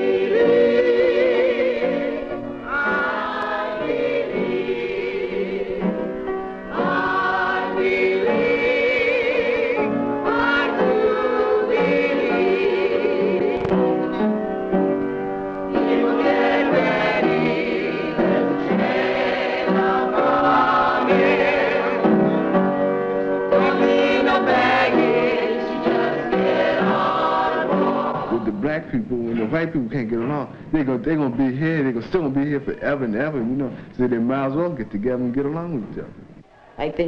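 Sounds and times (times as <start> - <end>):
choir singing: 0.0 - 14.3, 15.6 - 30.4.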